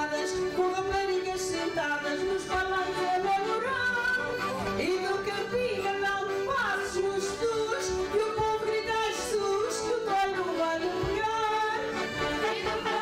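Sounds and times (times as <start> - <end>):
instrumental backing music: 0.0 - 13.0
woman singing: 0.0 - 13.0.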